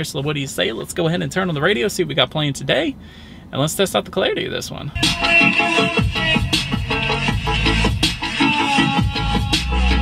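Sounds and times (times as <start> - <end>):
car radio music with heavy bass: 5.0 - 10.0.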